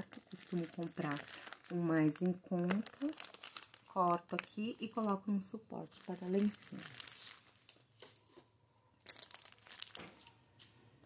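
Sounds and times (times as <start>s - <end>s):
plastic packaging crinkling: 0.0s - 8.4s, 9.0s - 10.8s.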